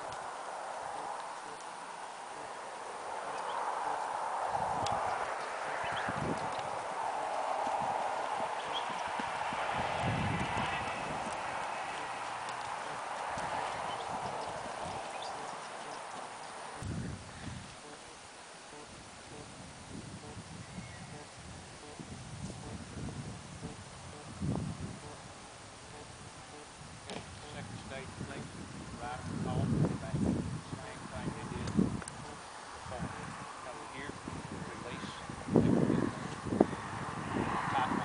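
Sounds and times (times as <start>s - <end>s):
horse hoofbeats on dirt: 5.2s - 16.8s.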